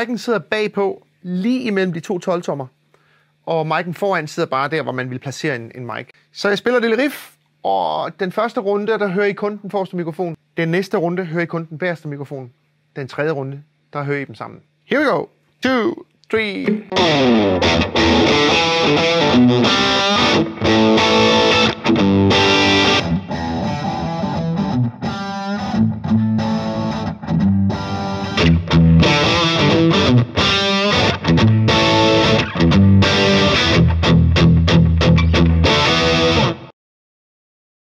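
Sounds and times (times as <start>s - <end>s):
distorted electric guitar riff: 16.3s - 36.7s.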